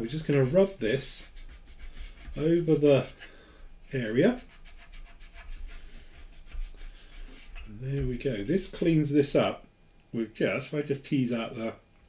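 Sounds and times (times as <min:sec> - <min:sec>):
sponge stick rubbing plastic: 0:00.0 - 0:03.3, 0:03.9 - 0:09.0.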